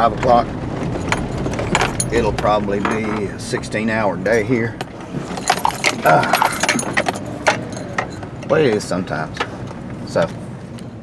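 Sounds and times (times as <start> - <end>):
truck low rumble: 0.0 - 11.0
keys jingling: 0.9 - 3.4, 5.1 - 8.7
metal parts rattling: 0.9 - 3.6, 5.0 - 8.8.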